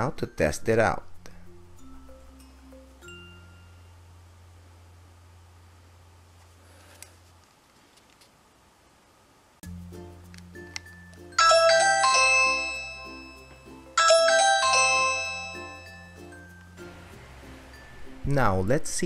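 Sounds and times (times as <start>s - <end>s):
light background music: 0.0s - 4.6s, 9.6s - 19.0s
doorbell ding-dong chime: 11.0s - 16.8s.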